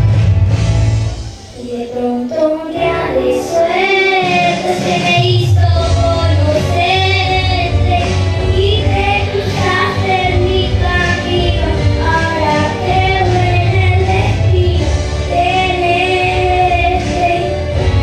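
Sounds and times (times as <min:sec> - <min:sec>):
backing music: 0:00.0 - 0:18.0
girl singing a ballad: 0:01.5 - 0:18.0.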